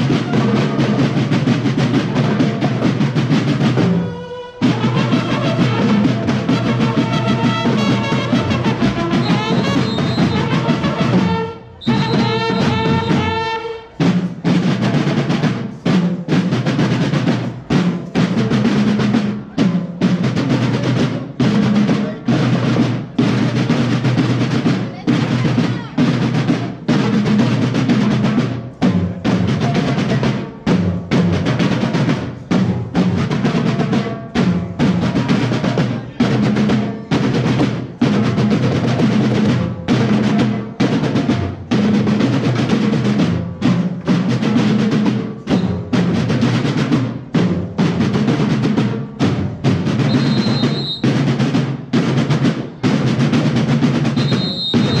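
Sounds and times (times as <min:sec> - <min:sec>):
bass drum: 0:00.0 - 0:04.0, 0:04.6 - 0:55.0
snare drum rolls: 0:00.0 - 0:55.0.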